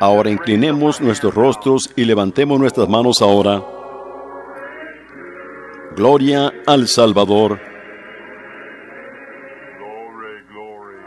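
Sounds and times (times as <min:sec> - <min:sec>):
congregation singing a hymn: 0:02.6 - 0:11.0
voice rising in pitch: 0:03.3 - 0:11.0.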